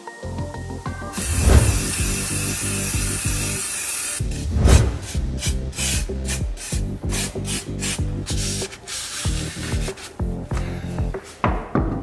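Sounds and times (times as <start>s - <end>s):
short rubbing strokes: 1.2s - 2.3s, 4.2s - 5.5s
aerosol spray hiss: 1.2s - 10.2s.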